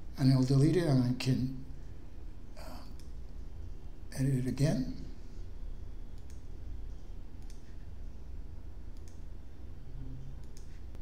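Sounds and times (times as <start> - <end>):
low steady hum: 0.0 - 11.0
computer mouse clicking: 6.1 - 6.5, 7.4 - 7.9, 8.9 - 9.3, 10.3 - 11.0.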